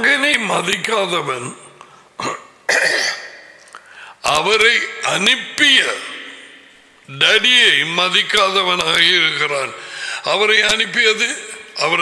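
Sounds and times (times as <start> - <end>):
man clearing his throat: 2.2 - 3.4.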